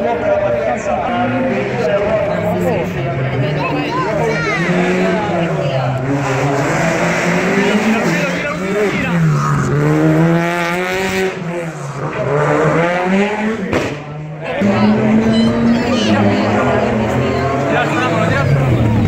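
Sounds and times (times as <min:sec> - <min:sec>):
rally car engine revving: 0:00.0 - 0:19.0.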